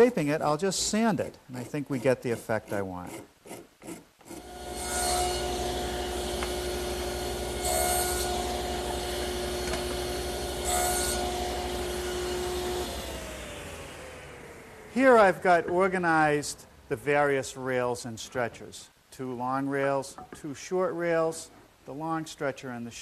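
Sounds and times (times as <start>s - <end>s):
table saw cutting wood: 1.7s - 14.3s
table saw running: 4.4s - 14.5s.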